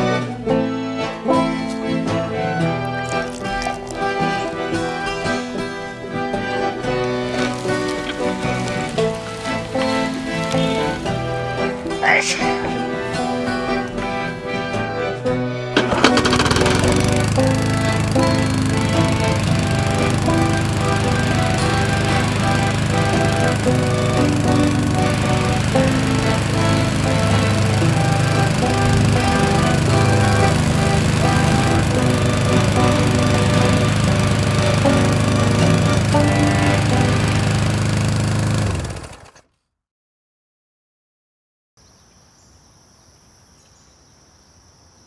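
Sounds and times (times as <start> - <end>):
country music: 0.0 - 39.0
lawn mower engine running: 0.0 - 39.5.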